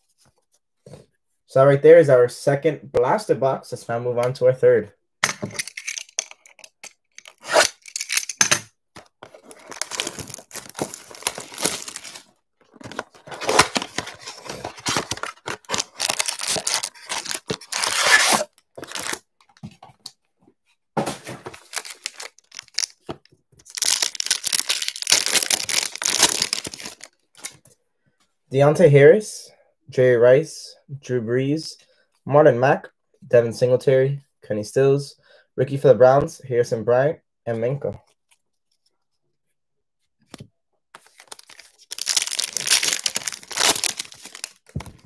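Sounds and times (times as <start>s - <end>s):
packaging tearing and rustling: 7.2s - 8.4s, 9.2s - 19.2s, 21.2s - 27.6s, 41.0s - 45.0s
foil pack crinkling and ripping: 9.4s - 19.2s, 21.5s - 27.6s, 41.0s - 45.0s.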